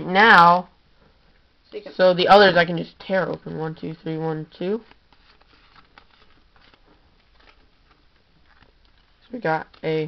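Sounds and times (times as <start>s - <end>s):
trading cards rustling and ticking: 4.6s - 10.0s.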